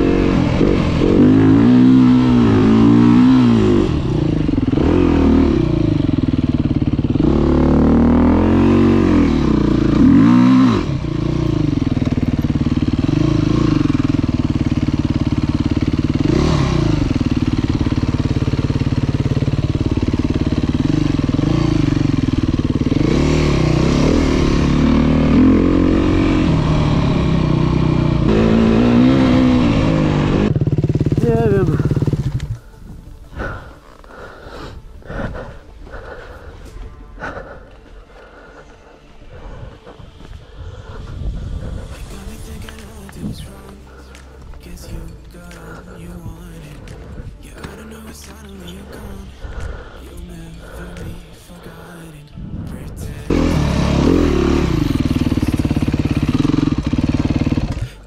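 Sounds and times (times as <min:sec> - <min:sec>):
dirt bike engine revving: 0:00.0 - 0:32.8, 0:53.1 - 0:58.0.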